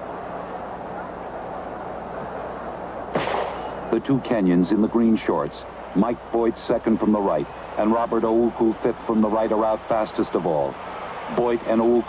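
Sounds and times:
stadium crowd murmur: 0.0s - 12.0s
starter's pistol shot: 3.1s - 3.8s.

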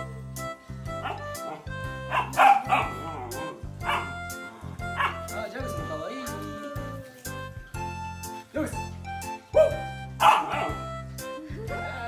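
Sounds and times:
background music: 0.0s - 12.0s
puppy barking and yipping: 1.0s - 4.2s, 4.9s - 5.3s, 9.5s - 10.9s.

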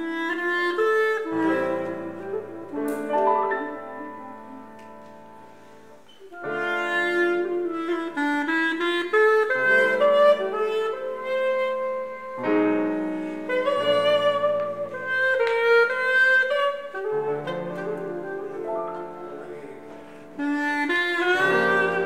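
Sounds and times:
clarinet ensemble: 0.0s - 22.0s
high clarinet melody: 0.0s - 22.0s
piano: 0.0s - 22.0s.

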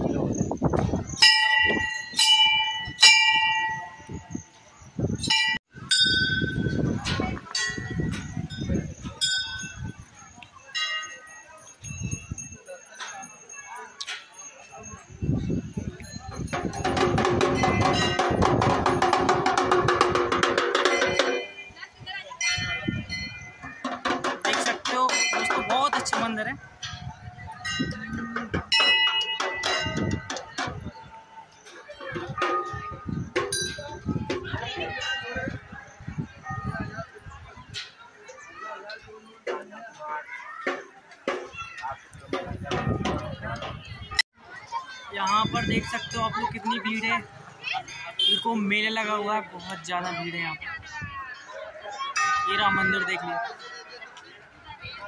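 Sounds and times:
crowd murmur: 0.0s - 55.0s
metal temple bell ringing: 1.2s - 4.1s, 16.0s - 19.5s, 20.6s - 21.8s, 24.9s - 27.0s, 27.6s - 30.4s, 52.1s - 53.3s
temple bells ringing: 1.2s - 4.6s, 5.2s - 31.7s, 32.4s - 35.8s, 44.9s - 49.4s, 52.0s - 53.8s.

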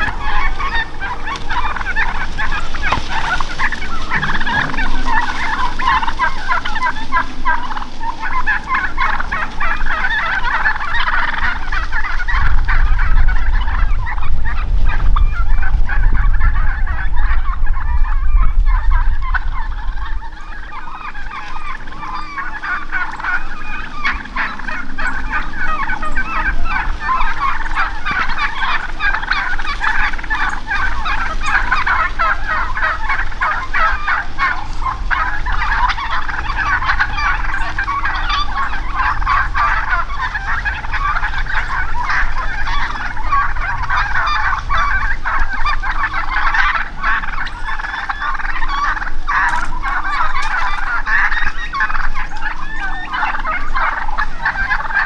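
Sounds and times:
low rumble: 0.0s - 51.0s
wild turkeys calling: 0.0s - 55.0s.

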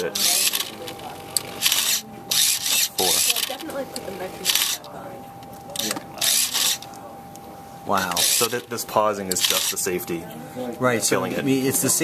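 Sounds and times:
slicer rasping mechanical noise: 0.0s - 3.7s, 4.4s - 4.9s, 5.8s - 6.9s, 8.1s - 9.9s
faint steady motor whine: 0.0s - 12.0s.

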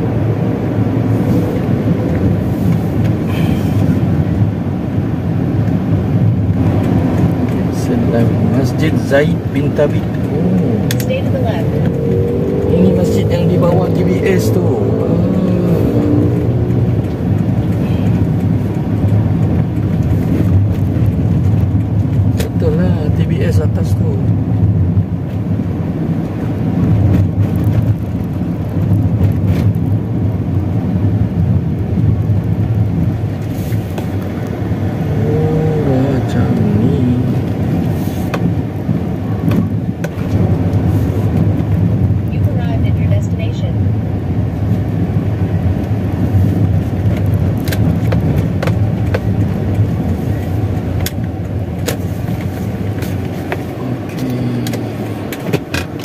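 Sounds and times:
car engine and tyre hum: 0.0s - 56.0s.

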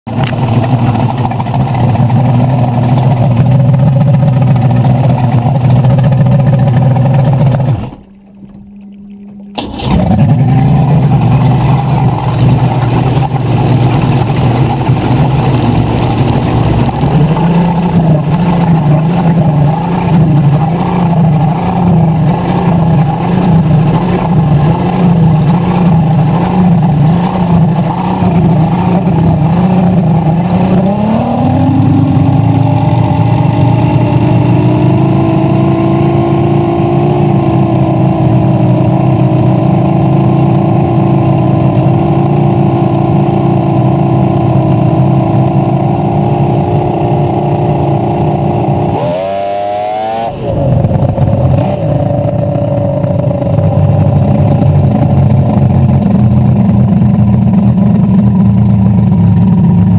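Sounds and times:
boat engine idling: 0.0s - 59.9s.

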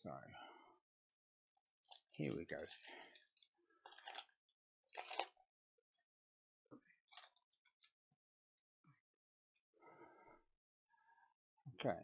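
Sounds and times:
foil wrapper crinkling: 1.8s - 4.3s, 4.9s - 5.4s.

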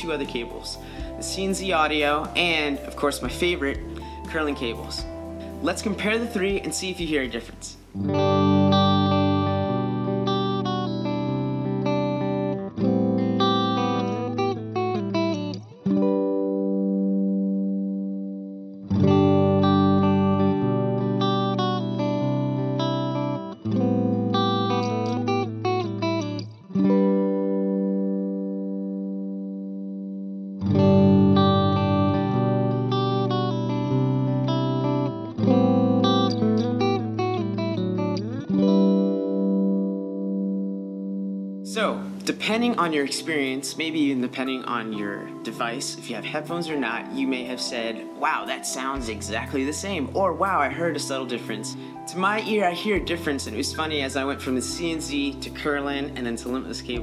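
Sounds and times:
fingerpicked electric guitar: 0.0s - 57.0s.

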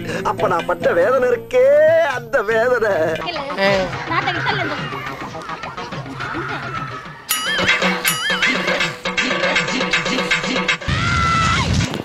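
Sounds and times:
background music with quick beat: 0.0s - 12.0s
warbling horse whinny: 6.3s - 8.8s.

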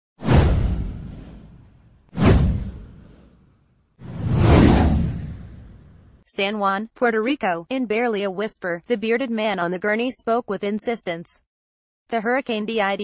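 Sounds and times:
whoosh sound effects: 0.2s - 6.2s.

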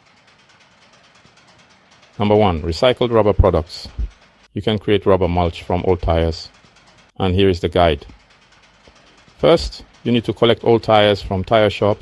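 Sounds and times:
machine noise with rapid rattle: 0.0s - 12.0s.

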